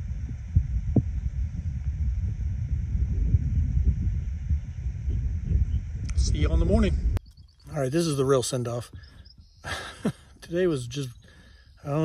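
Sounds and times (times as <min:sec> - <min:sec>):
wind buffeting microphone: 0:00.0 - 0:10.3.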